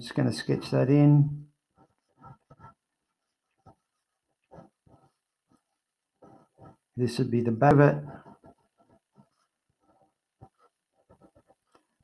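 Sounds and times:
pencil scratching on paper: 0.1 - 12.0.

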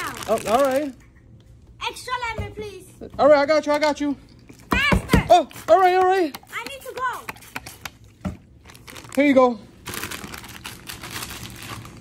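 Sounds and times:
plastic chip bag crinkling: 0.0 - 1.0, 8.6 - 12.0.

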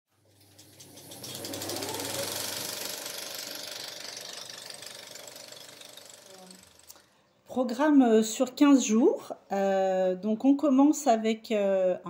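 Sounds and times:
fast mechanical rattle with hiss: 0.2 - 7.0.

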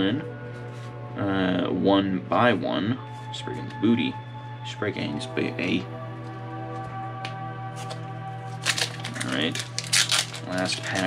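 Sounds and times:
background music: 0.0 - 11.0
foil pack crinkling: 7.8 - 11.0.

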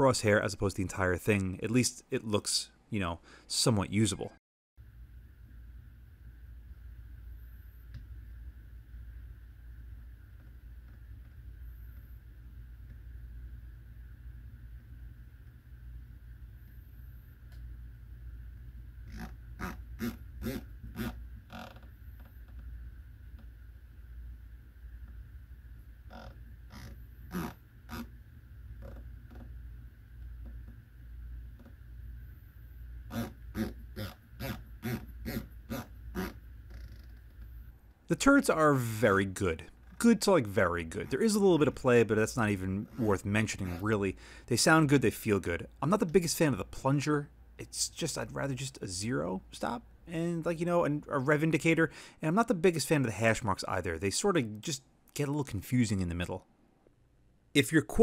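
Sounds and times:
steady low hum: 4.8 - 58.0.

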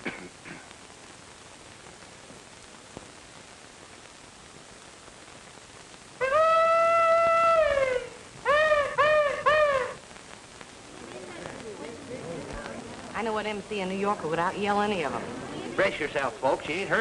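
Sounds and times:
film soundtrack hiss: 0.0 - 17.0.

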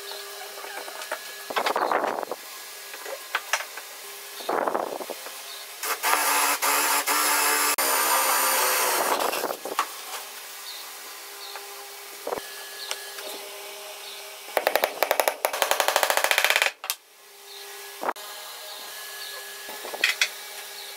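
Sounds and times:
power drill boring into wood: 5.8 - 9.4, 14.7 - 16.7.

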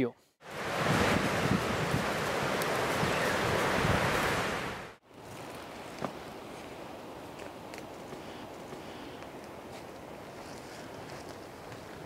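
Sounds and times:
rushing wind-like noise: 0.4 - 5.0
footsteps in dry leaves: 9.3 - 12.0.

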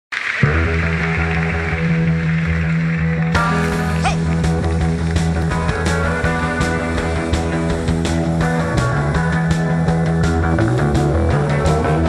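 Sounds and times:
band music groove: 3.4 - 12.0.

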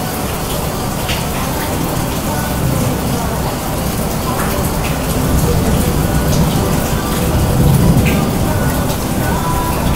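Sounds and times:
heavy rain falling: 0.0 - 9.9.

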